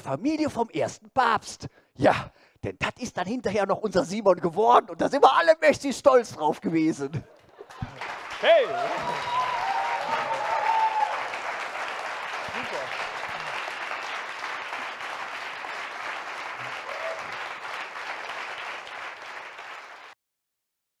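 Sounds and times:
audience applauding: 7.5s - 20.2s.

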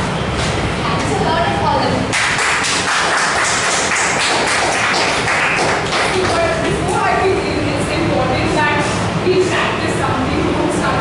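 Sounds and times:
woman speaking: 0.8s - 2.1s, 6.0s - 11.0s
people applauding: 2.1s - 6.7s.

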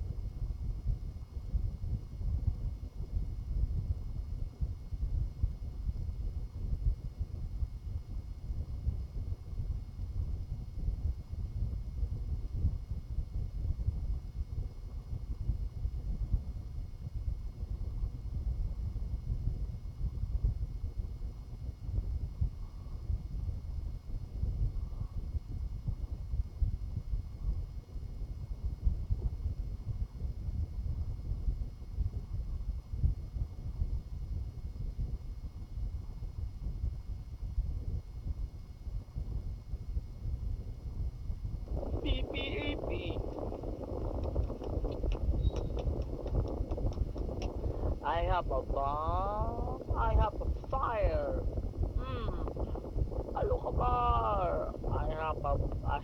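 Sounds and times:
microphone handling rumble: 0.0s - 56.0s
voice from phone speaker: 42.0s - 43.4s, 48.0s - 51.4s, 53.4s - 56.0s.

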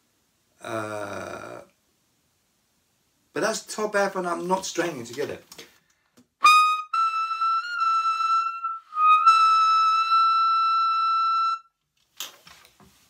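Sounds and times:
tenor saxophone held notes: 6.4s - 11.7s.

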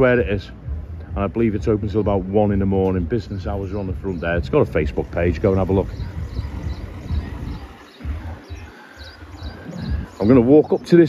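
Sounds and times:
wind rumble on microphone: 0.6s - 10.6s
faint bird chirps: 1.9s - 11.0s.

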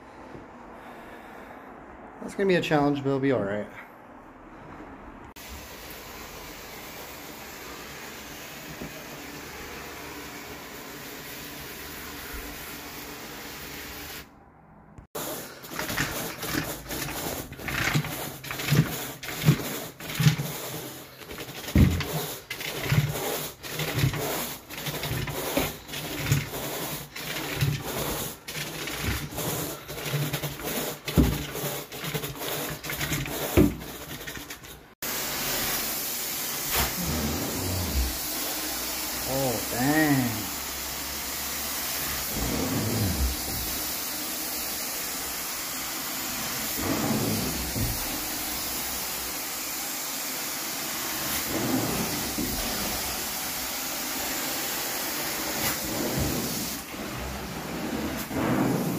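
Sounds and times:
carpet extraction machine rushing: 15.2s - 34.9s, 36.7s - 44.7s, 46.0s - 49.2s, 50.6s - 58.9s
carpet rake scratching: 15.2s - 34.9s.

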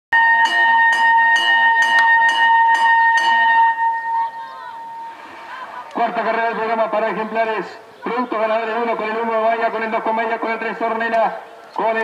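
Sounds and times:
loud electronic tone with beat: 0.1s - 4.2s.

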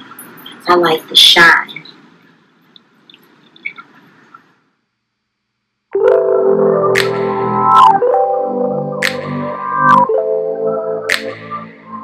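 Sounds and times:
background music with sharp hits: 6.0s - 12.0s.

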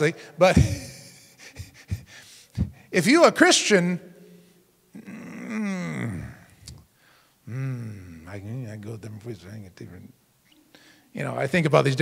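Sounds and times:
man's wordless vocal falling in pitch: 5.0s - 6.6s.

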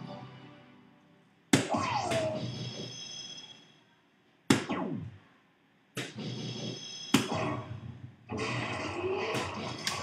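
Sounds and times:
dart hitting electronic dartboard: 4.5s - 5.1s, 6.0s - 7.6s.

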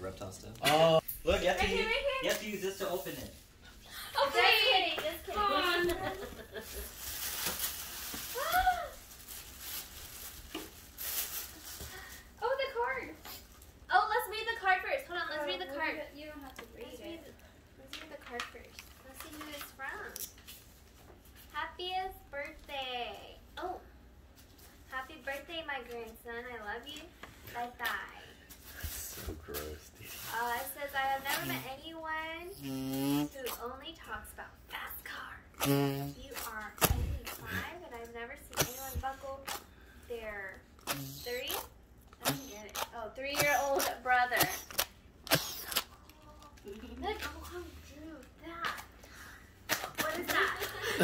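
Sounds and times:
voices speaking: 4.0s - 6.4s, 30.3s - 49.0s
tissue paper rustling: 5.6s - 12.4s
person saying ooh: 8.4s - 9.0s.

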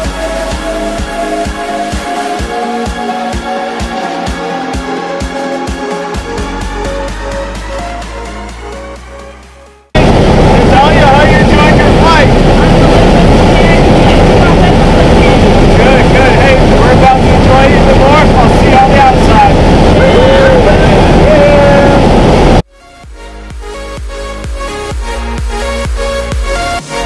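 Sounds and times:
music: 0.0s - 27.0s
plane engine and propeller noise: 9.0s - 22.7s
voices talking: 10.5s - 22.0s.

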